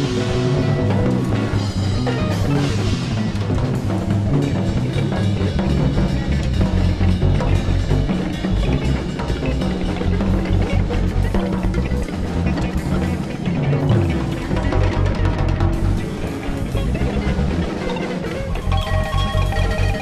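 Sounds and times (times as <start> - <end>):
drum kit with timbales: 0.0 - 20.0
electric bass: 0.0 - 20.0
electric guitar: 0.0 - 20.0.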